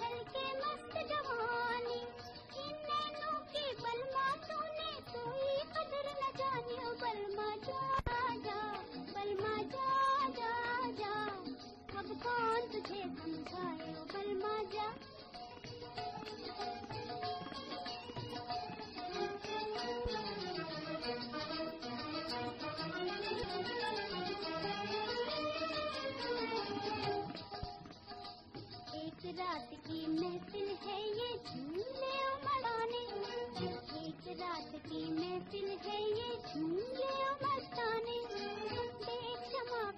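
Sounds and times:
woman singing: 0:00.0 - 0:27.4, 0:28.8 - 0:39.9
instrumental accompaniment with beat: 0:00.0 - 0:39.9
person singing: 0:28.9 - 0:39.9.

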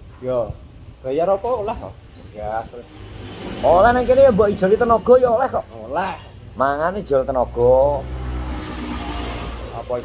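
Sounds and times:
man talking: 0:00.2 - 0:03.0, 0:03.6 - 0:08.1, 0:09.6 - 0:10.0
vehicle passing by: 0:02.4 - 0:10.0.

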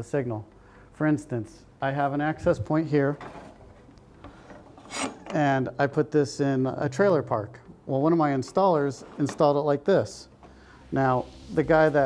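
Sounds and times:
rubbing and scraping handling noise: 0:02.5 - 0:05.5, 0:08.4 - 0:09.6.

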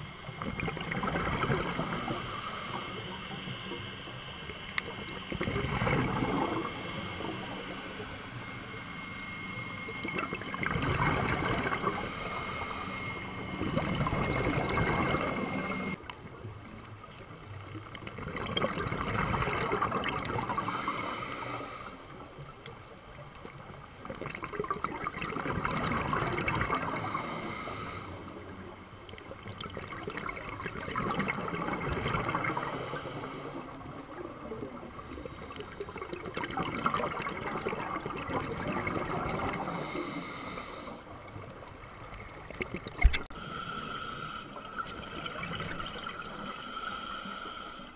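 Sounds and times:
regulator exhaust bubbling underwater: 0:00.0 - 0:03.8, 0:04.5 - 0:07.8, 0:08.7 - 0:16.0, 0:17.8 - 0:21.1, 0:24.0 - 0:27.4, 0:29.1 - 0:40.2
regulator high hiss: 0:01.7 - 0:05.1, 0:11.8 - 0:13.5.

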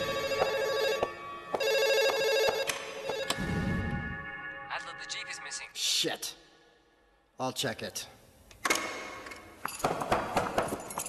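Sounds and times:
telephone ringing: 0:00.0 - 0:03.7.

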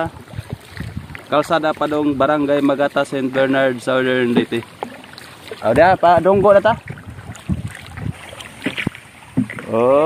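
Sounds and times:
wind on microphone: 0:00.0 - 0:02.6, 0:04.2 - 0:10.0
paddle knocks and splashes: 0:00.0 - 0:10.0.

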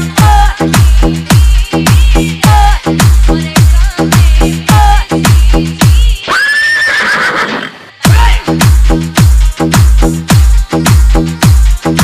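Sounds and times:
heavy bass beat: 0:00.0 - 0:06.2, 0:08.1 - 0:12.0
horse whinny: 0:06.3 - 0:07.9.

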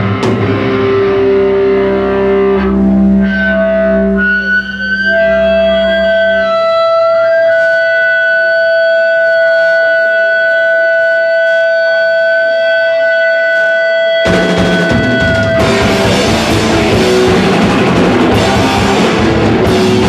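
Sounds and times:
rock band with drum kit: 0:00.0 - 0:10.8, 0:14.1 - 0:20.0
bass guitar: 0:00.0 - 0:11.6, 0:14.2 - 0:20.0
electric guitar tones ringing: 0:00.0 - 0:20.0.

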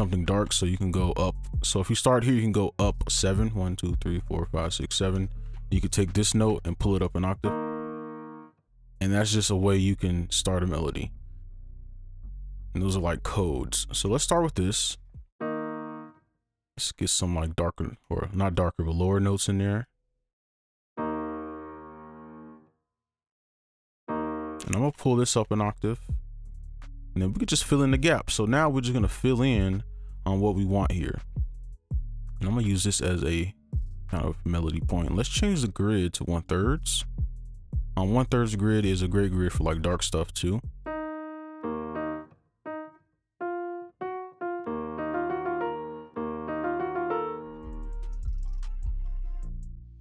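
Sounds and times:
piano chord: 0:07.5 - 0:08.5, 0:15.4 - 0:16.2, 0:21.0 - 0:22.7, 0:24.1 - 0:24.7, 0:40.9 - 0:48.2.

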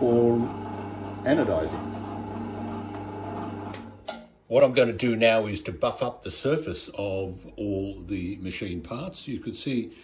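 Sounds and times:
drill press motor humming: 0:00.0 - 0:04.1.

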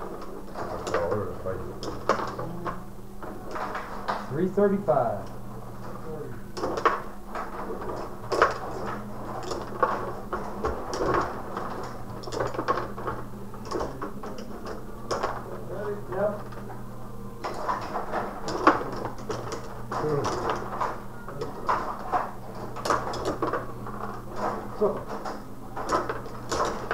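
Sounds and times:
control rods clicking: 0:00.0 - 0:26.9.

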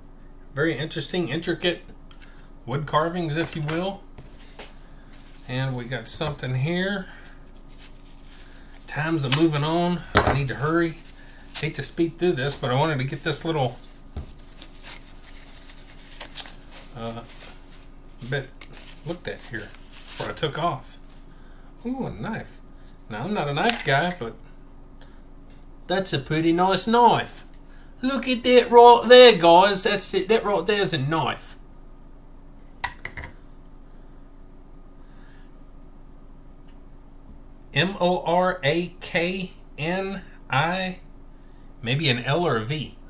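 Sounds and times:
faint steady hum: 0:00.0 - 0:43.0
wrapping rustling: 0:04.3 - 0:06.1, 0:07.1 - 0:09.7, 0:10.4 - 0:21.3.

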